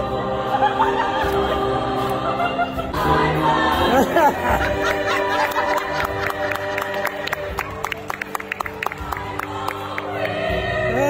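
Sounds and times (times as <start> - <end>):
women's choir singing chords: 0.0 - 11.0.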